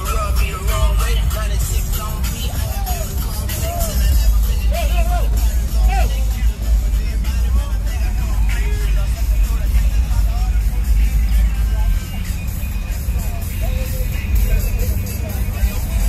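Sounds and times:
loud bass-heavy music: 0:00.0 - 0:16.0.

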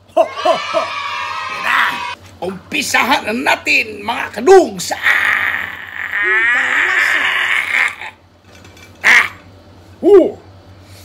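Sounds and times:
person cheering shout: 0:00.1 - 0:02.2, 0:04.9 - 0:08.1.

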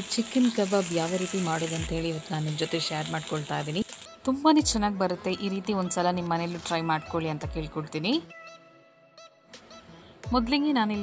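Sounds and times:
chicken sizzling in oil: 0:00.0 - 0:04.1
background music with singing: 0:01.2 - 0:11.0.

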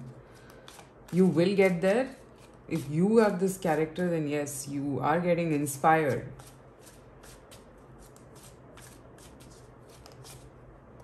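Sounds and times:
cards being shuffled: 0:00.3 - 0:01.4, 0:02.2 - 0:02.9, 0:06.4 - 0:10.6.

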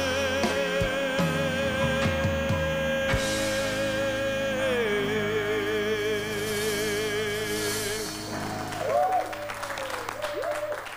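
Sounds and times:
audience applauding and cheering: 0:08.3 - 0:10.9.

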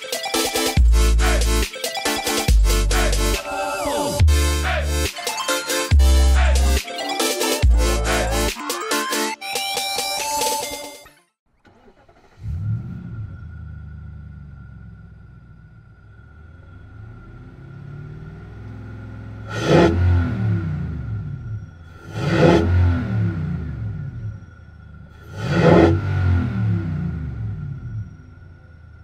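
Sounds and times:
car engine idling and revving: 0:05.9 - 0:08.6, 0:11.5 - 0:29.0
engine intake induction sound: 0:11.6 - 0:17.5.

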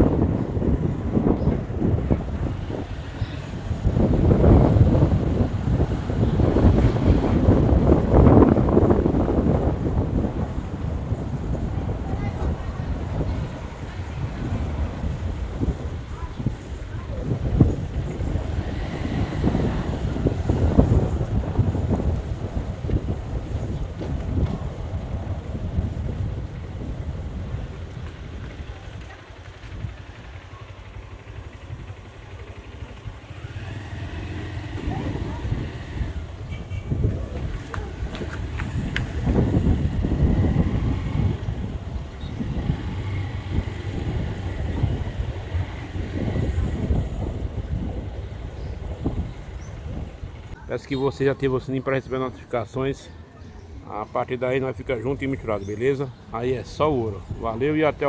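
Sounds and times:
faint street sound: 0:00.0 - 0:58.0
wind buffeting microphone: 0:00.0 - 0:58.0.

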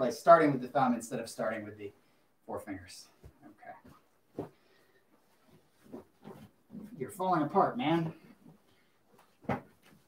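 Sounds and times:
cloth rustling and handling: 0:03.1 - 0:10.0.

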